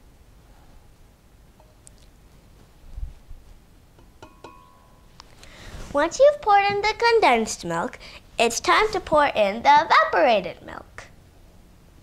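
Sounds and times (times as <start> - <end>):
ringing clink: 4.0 - 5.1.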